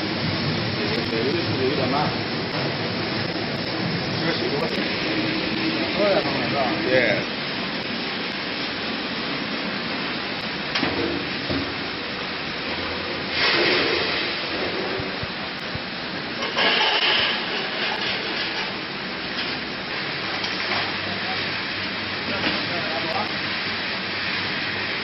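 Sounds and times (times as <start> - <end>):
loud rushing surges: 0.0 - 18.3
frying machine hissing: 0.0 - 25.0.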